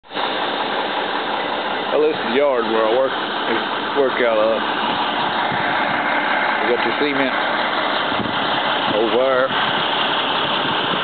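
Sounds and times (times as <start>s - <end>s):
engine running with hiss: 0.1s - 11.0s.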